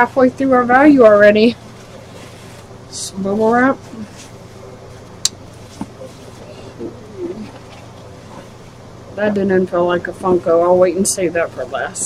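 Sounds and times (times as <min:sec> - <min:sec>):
faint hummed murmur: 0:00.0 - 0:12.0
low electrical hum: 0:00.0 - 0:12.0.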